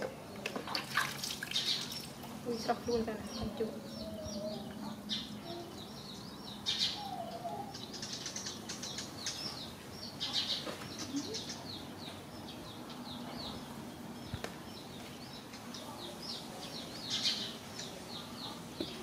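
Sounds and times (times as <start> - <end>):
small birds chirping: 0.0 - 19.0.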